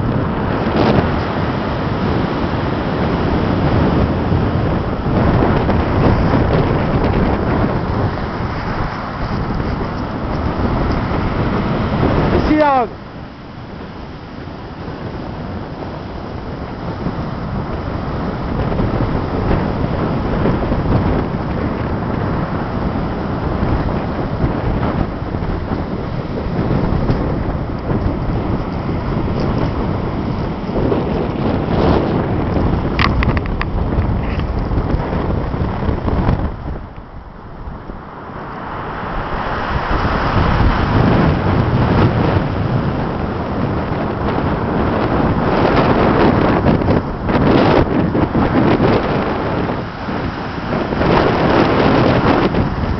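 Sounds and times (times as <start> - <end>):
heavy surf breaking: 0.0 - 52.9
wind buffeting microphone: 0.0 - 52.9.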